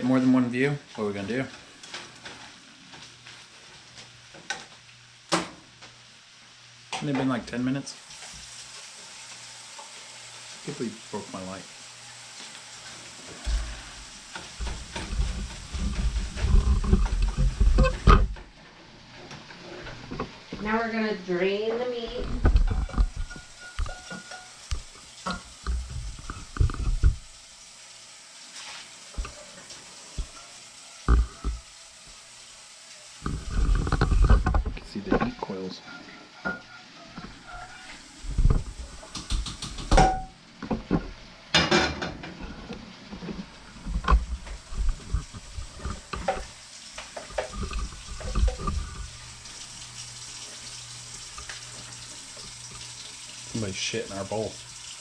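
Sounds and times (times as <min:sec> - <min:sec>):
running water: 0:06.9 - 0:55.0
pan and utensils clanking: 0:12.4 - 0:18.5, 0:19.1 - 0:27.2, 0:33.2 - 0:49.2.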